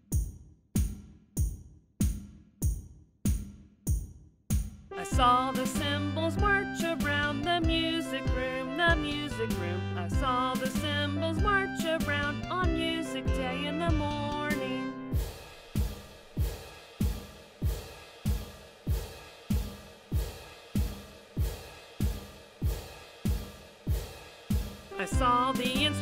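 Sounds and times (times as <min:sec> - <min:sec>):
children's song with backing: 0:04.9 - 0:15.1, 0:24.9 - 0:26.0.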